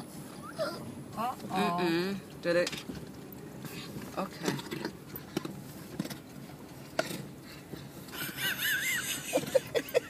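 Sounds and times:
laughter bursts: 8.2s - 10.0s.

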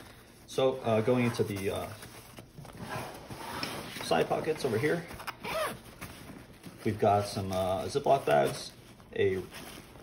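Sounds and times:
nylon fabric rustling: 0.0s - 10.0s.

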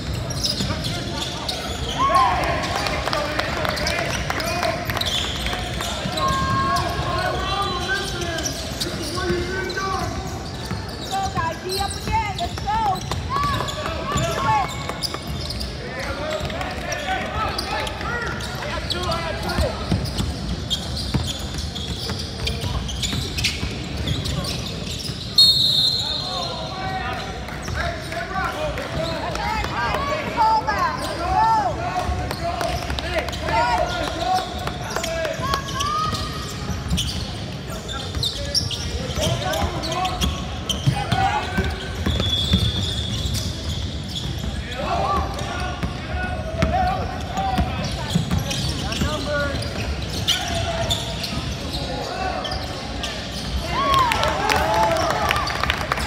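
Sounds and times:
players' voices: 0.0s - 56.0s
sneakers squeaking: 0.0s - 56.0s
referee's whistle blast: 25.4s - 26.5s.

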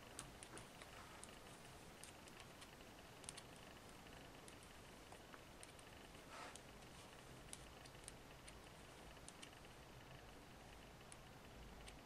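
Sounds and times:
knitting needles clicking: 0.0s - 12.0s.

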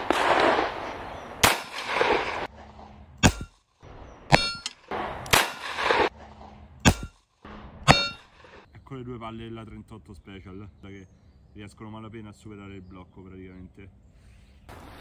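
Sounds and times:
revolver gunshots: 0.0s - 8.7s
metallic clang: 3.2s - 3.6s, 4.3s - 4.9s, 6.8s - 8.4s.

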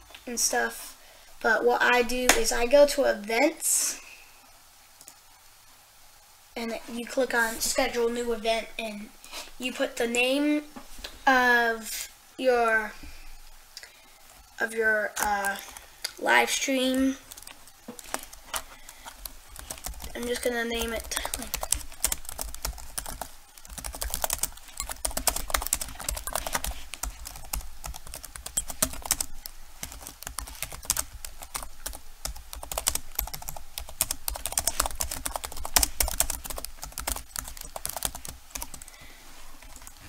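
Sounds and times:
fast typing on keyboard: 17.1s - 39.0s.

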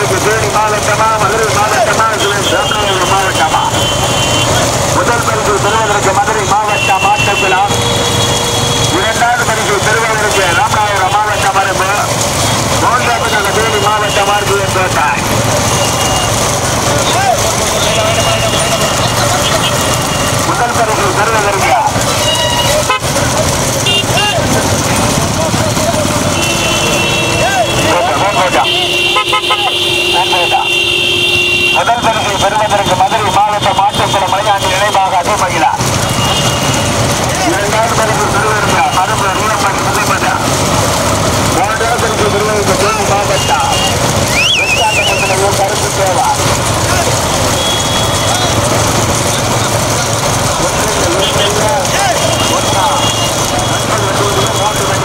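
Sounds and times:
motorcycle engines running: 0.0s - 55.0s
horn honking: 1.3s - 21.2s, 21.8s - 24.6s, 26.2s - 37.2s, 47.2s - 49.3s, 50.8s - 55.0s
people shouting excitedly: 15.7s - 20.1s, 23.9s - 24.6s, 26.2s - 32.4s.

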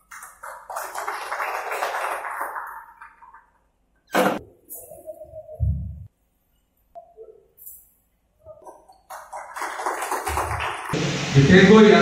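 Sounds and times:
audience applause: 0.0s - 3.5s, 9.1s - 11.1s.

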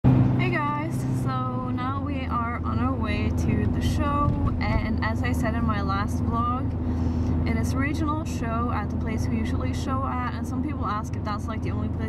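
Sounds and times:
car engine and road noise: 0.0s - 12.0s
woman talking: 0.4s - 6.7s, 7.5s - 12.0s.

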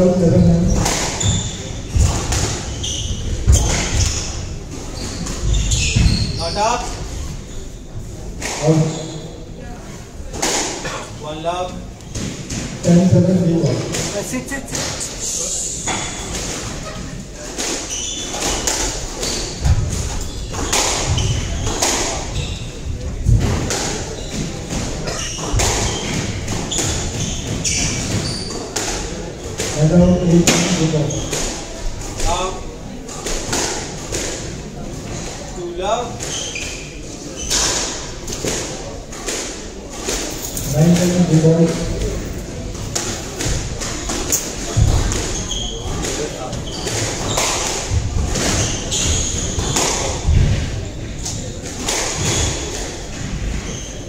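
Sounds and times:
squash ball thuds: 0.2s - 6.4s, 23.2s - 31.6s, 42.7s - 53.6s.

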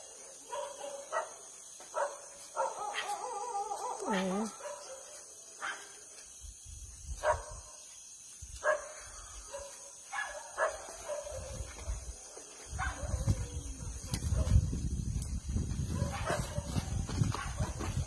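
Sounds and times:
dog barking: 0.4s - 6.0s, 7.2s - 7.7s, 8.6s - 12.0s, 12.8s - 13.5s, 16.0s - 17.9s.

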